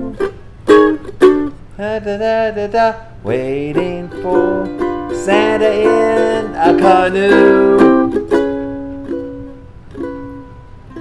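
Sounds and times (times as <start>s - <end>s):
ukulele chords strummed: 0.0s - 11.0s.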